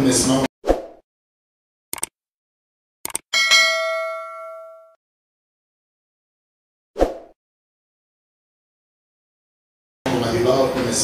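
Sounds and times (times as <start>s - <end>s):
short clicks: 1.9s - 2.2s, 3.0s - 3.3s
notification bell ding: 3.4s - 5.0s.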